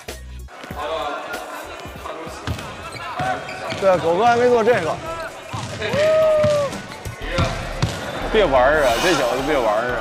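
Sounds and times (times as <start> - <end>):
basketball bouncing on hard court: 3.2 - 8.1.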